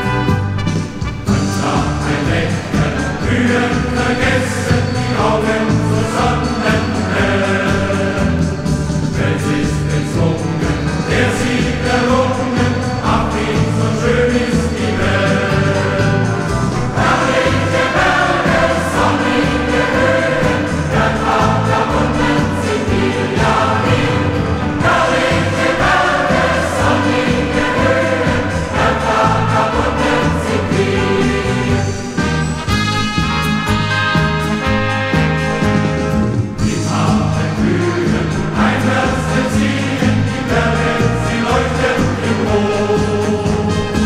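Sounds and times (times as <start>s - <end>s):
choir singing with accompaniment: 0.0s - 44.0s.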